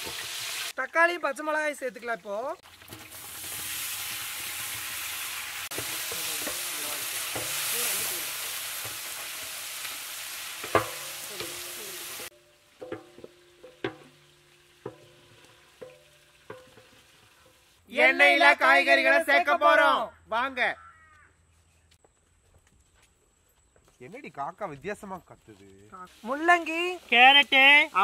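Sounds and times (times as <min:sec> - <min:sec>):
vegetables sizzling in hot oil: 0:00.0 - 0:17.8, 0:26.1 - 0:28.0.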